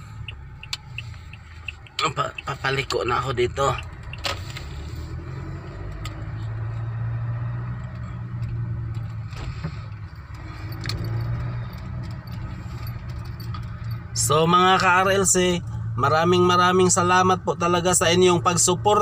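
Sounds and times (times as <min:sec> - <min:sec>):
car engine and road hum: 0:00.0 - 0:19.0.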